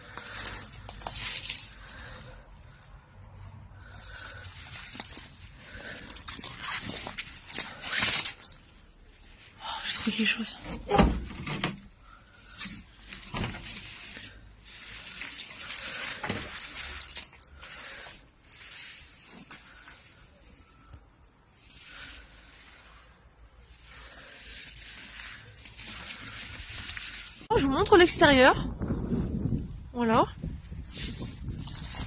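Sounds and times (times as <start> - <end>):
footsteps on dry leaves: 0.0 - 2.2, 23.8 - 27.5, 30.7 - 32.0.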